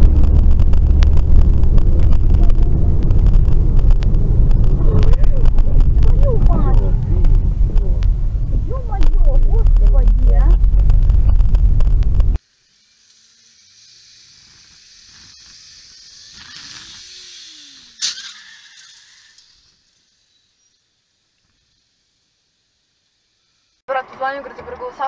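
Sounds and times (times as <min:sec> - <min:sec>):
road rumble inside car: 0:00.0 - 0:12.4
voices talking: 0:01.8 - 0:10.9
faint hiss: 0:12.4 - 0:25.0.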